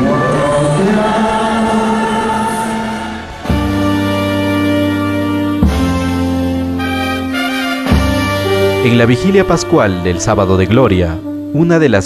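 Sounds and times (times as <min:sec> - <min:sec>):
voices singing a hymn: 0:00.0 - 0:05.1.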